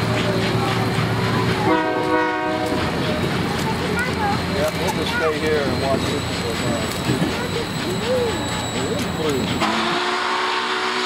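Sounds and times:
train rolling past: 0:00.0 - 0:11.0
train whistle blast: 0:01.7 - 0:02.7, 0:09.6 - 0:11.0.

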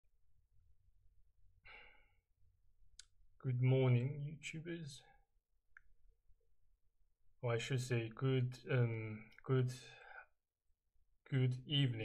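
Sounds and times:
faint breath: 0:01.6 - 0:02.2.

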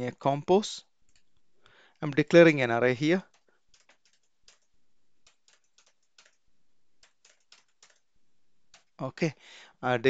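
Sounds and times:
computer keyboard typing: 0:03.1 - 0:08.1, 0:08.7 - 0:09.0.

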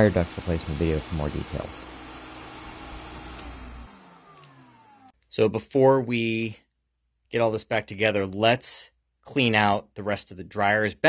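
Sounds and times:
shop vacuum running: 0:00.0 - 0:05.2.

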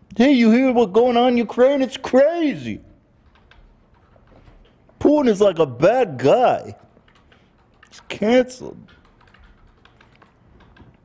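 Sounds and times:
laptop keyboard typing: 0:03.2 - 0:11.0.

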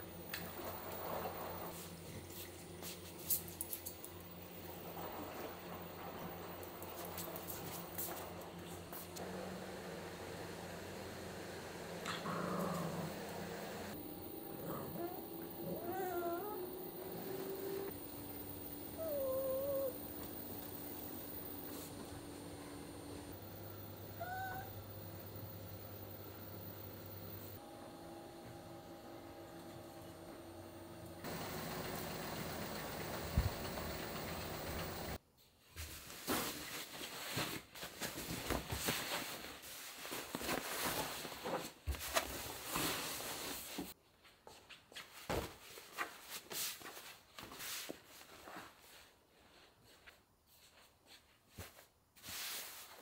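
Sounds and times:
small dog whining: 0:14.6 - 0:17.9, 0:18.9 - 0:20.3, 0:24.1 - 0:24.8.

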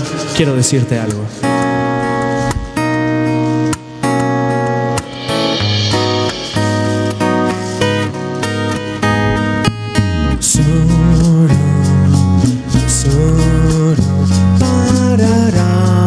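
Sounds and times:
acoustic guitar strumming: 0:00.0 - 0:16.0
electric bass line: 0:04.5 - 0:16.0.

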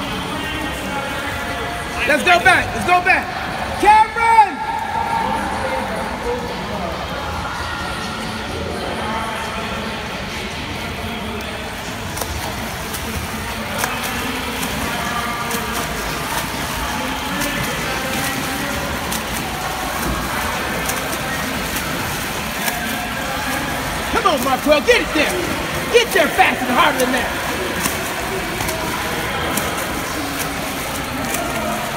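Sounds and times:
faint voices: 0:00.0 - 0:31.9
water splashing from swimming: 0:04.6 - 0:31.9.

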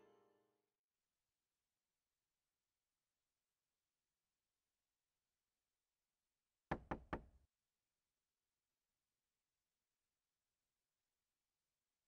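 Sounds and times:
knocks on a door: 0:06.7 - 0:07.4.

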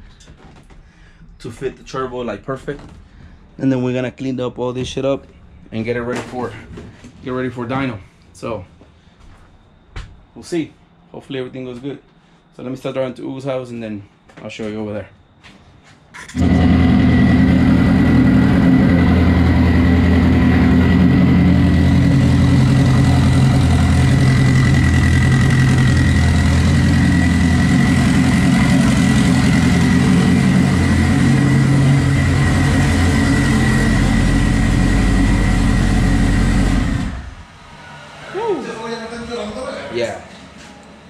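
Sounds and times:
car engine running: 0:16.3 - 0:37.6.

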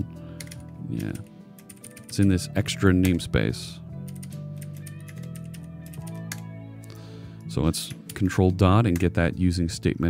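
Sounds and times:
quiet background music: 0:00.0 - 0:10.0
typing on computer keyboard: 0:00.4 - 0:02.2.

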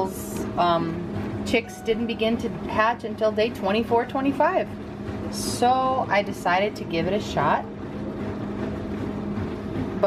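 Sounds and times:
incubator fan humming: 0:00.0 - 0:10.0.

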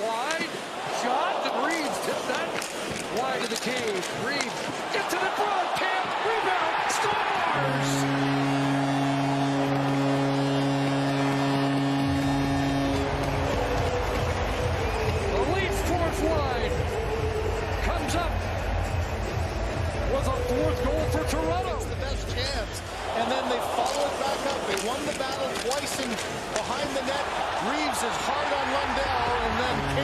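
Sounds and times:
crowd shouting: 0:00.0 - 0:02.9, 0:04.8 - 0:19.8, 0:22.8 - 0:30.0
arena goal horn: 0:05.3 - 0:18.0, 0:20.2 - 0:21.8, 0:23.2 - 0:30.0.

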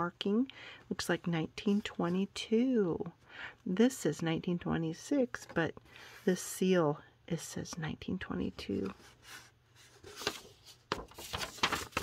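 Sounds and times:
old paper rustling: 0:08.6 - 0:12.0
page flipping crackle: 0:09.8 - 0:12.0.

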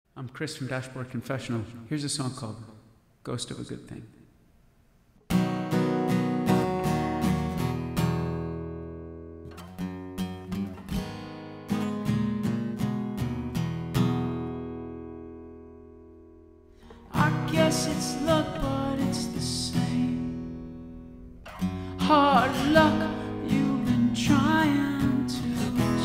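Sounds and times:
acoustic guitar strumming: 0:05.3 - 0:26.0.

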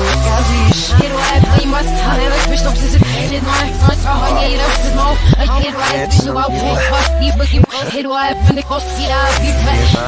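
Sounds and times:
reversed hip hop song: 0:00.0 - 0:10.0.

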